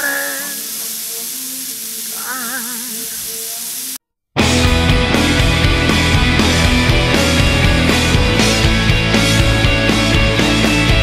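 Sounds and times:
background hiss: 0.0 - 4.0.

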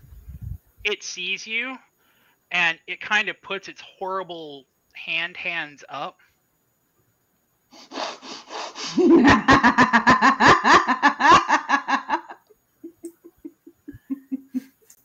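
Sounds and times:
people laughing hard: 8.8 - 12.4
soft chuckles and breaths: 12.8 - 15.0.

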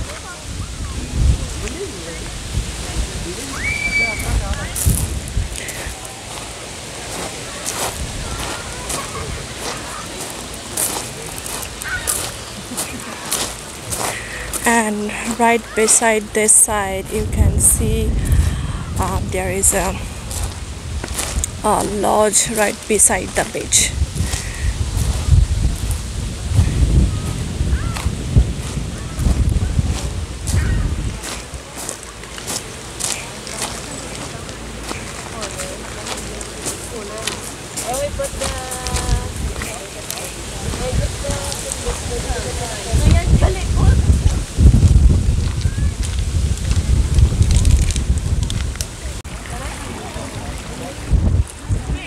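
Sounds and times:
wind rumbling on microphone: 0.0 - 52.0
people talking faintly: 48.9 - 52.0.

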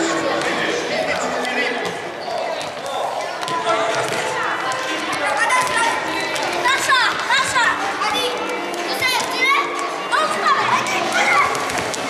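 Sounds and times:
crowd chatter: 0.0 - 12.0
children shouting: 5.2 - 11.9.

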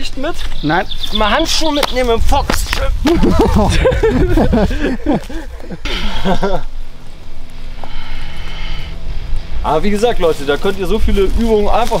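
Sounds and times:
man laughing: 3.0 - 6.8.

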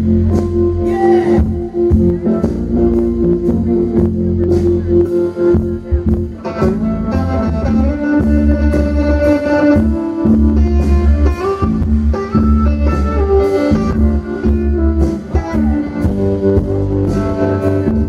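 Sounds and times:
bass and drums: 0.0 - 18.0
electric guitar: 0.0 - 18.0.

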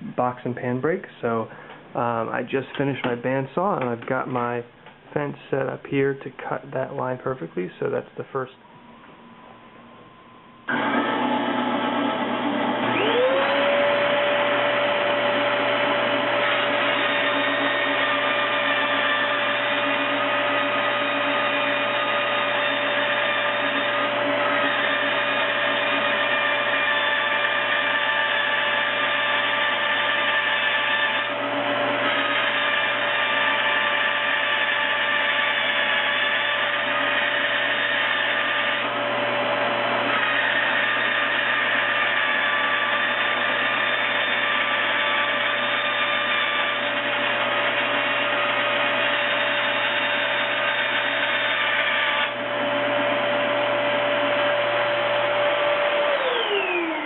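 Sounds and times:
bandsaw cutting sheet metal: 10.7 - 57.0.

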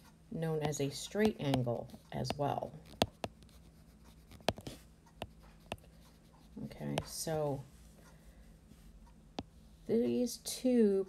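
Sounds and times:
stylus tapping and scratching screen: 0.5 - 7.6, 9.0 - 9.9.

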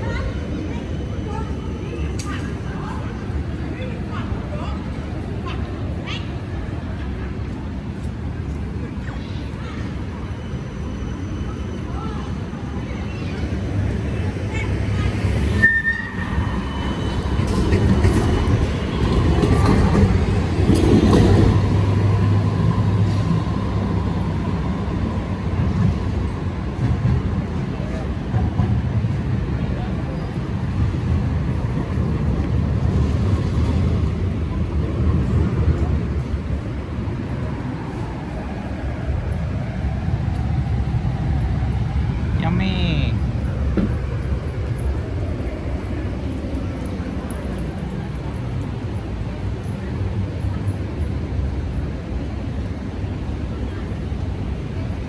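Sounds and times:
people's voices: 0.0 - 55.0
road traffic: 0.0 - 55.0.

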